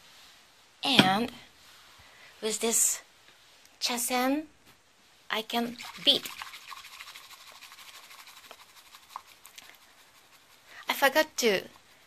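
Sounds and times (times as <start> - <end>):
whisk brushing swish: 5.7 - 12.0.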